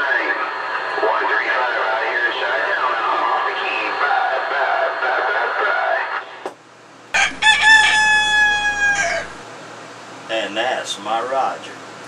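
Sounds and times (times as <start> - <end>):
rooster crowing over radio: 7.2 - 9.4.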